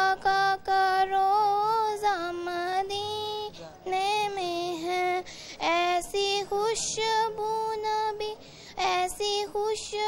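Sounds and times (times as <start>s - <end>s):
girl singing unaccompanied: 0.0s - 10.0s
short breath: 5.2s - 5.6s, 8.4s - 8.8s.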